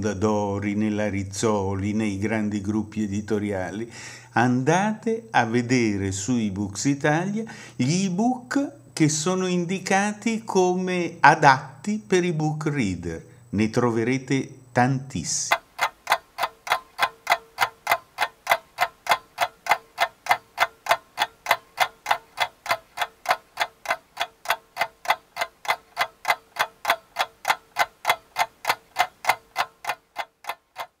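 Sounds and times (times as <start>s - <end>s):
faint steady tone: 0.0s - 31.0s
clock ticking: 15.4s - 31.0s.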